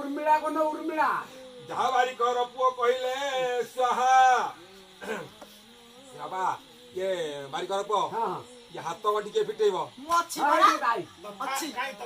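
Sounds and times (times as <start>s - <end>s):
man calling out: 10.1s - 12.0s.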